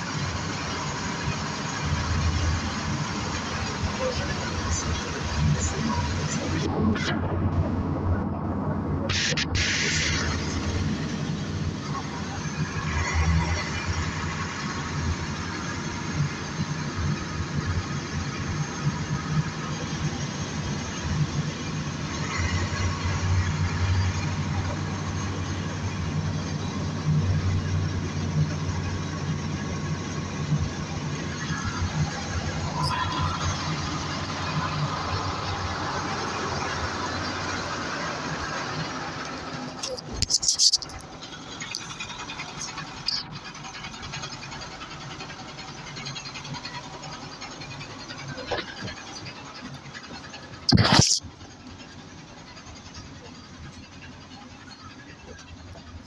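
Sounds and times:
bus engine drone: 0.0s - 56.0s
road noise: 0.0s - 56.0s.

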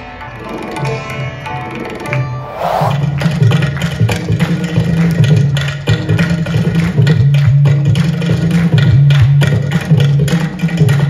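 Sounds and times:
clay pot and drum percussion: 3.8s - 11.0s.

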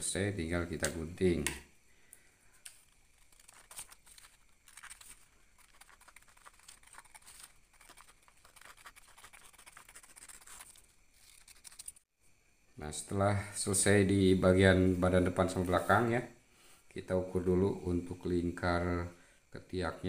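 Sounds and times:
paper rustling: 2.6s - 12.0s
scissors cutting paper: 3.2s - 12.0s.

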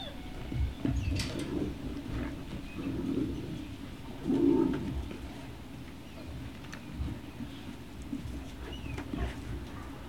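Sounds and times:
low throaty animal calls: 0.0s - 5.5s.

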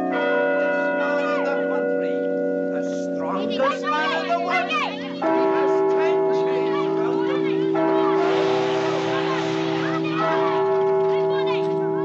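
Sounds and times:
sustained bell-like chord: 0.7s - 12.0s
busy street noise: 2.6s - 12.0s.

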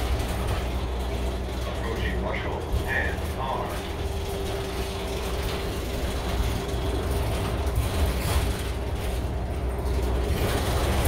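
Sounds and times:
bus engine and road rumble: 0.0s - 11.0s
bus fittings rattling: 0.0s - 11.0s.

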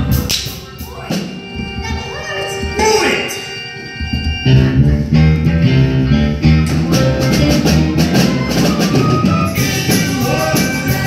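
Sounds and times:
guitar: 0.0s - 11.0s
stepping bass line: 4.3s - 11.0s.

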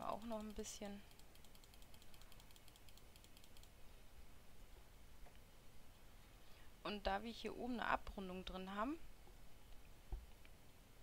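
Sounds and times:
faint keyboard clicking: 0.0s - 3.8s.

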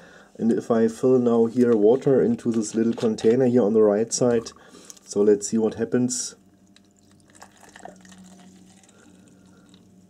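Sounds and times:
water pouring into plastic cup: 6.7s - 9.9s.

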